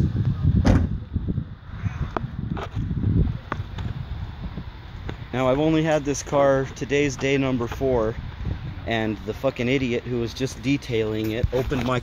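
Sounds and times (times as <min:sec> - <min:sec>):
wind on phone microphone: 0:00.0 - 0:05.3, 0:07.6 - 0:09.3.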